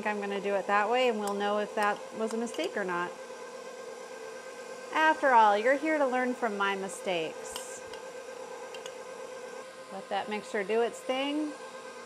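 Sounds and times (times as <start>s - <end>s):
beater churning thick batter: 0.0s - 12.0s
stand mixer whining: 0.0s - 12.0s.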